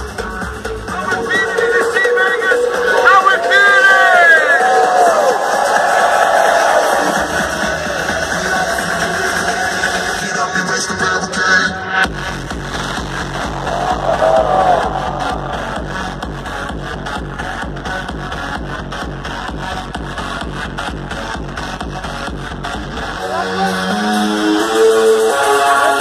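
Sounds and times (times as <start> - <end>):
electronic dance music: 0.0 - 26.0
heavy bass beat: 0.0 - 26.0
crowd cheering: 1.7 - 10.0, 13.3 - 16.8.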